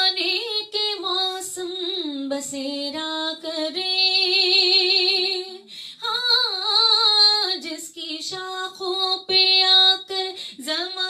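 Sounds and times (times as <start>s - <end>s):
woman singing into a microphone: 0.0s - 11.0s.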